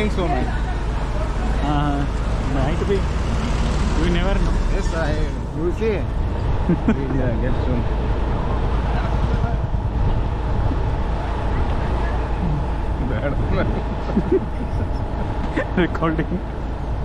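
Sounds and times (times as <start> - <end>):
motorbike engine rumble: 0.0 - 17.0
voices: 0.0 - 17.0
wind: 0.0 - 17.0.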